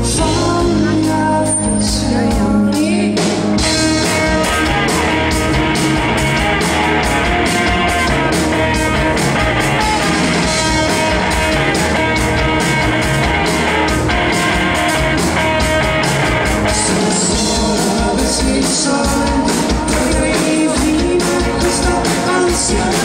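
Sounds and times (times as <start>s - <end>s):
bass guitar: 0.0s - 23.0s
electric guitars: 0.0s - 23.0s
drum beat: 3.6s - 23.0s.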